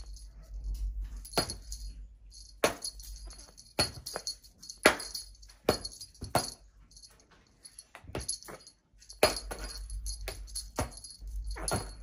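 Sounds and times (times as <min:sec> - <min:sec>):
metal jingles shaken: 0:00.0 - 0:12.0.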